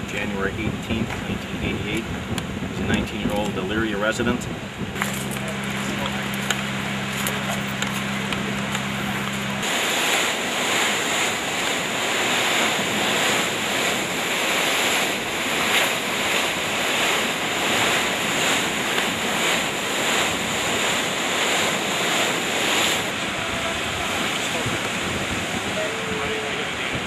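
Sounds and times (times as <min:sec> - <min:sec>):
waves splashing against wall: 0:00.0 - 0:27.0
wind buffeting microphone: 0:00.0 - 0:27.0.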